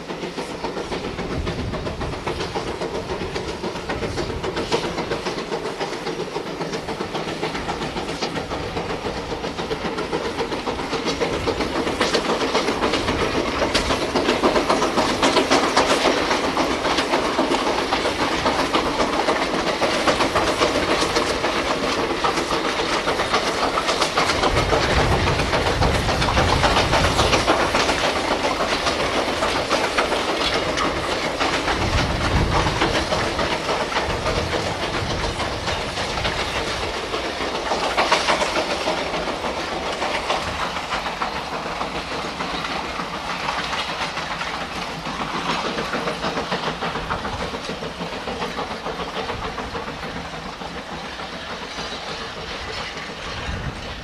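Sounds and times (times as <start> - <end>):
steam locomotive exhaust beats: 0.0 - 54.0
wagons rattling on track: 0.0 - 54.0.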